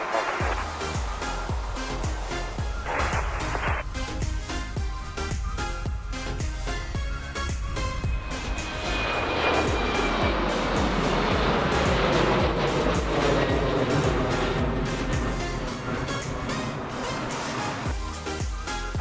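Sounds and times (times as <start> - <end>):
jet engines climbing: 0.0 - 19.0
background music with steady beat: 0.1 - 19.0.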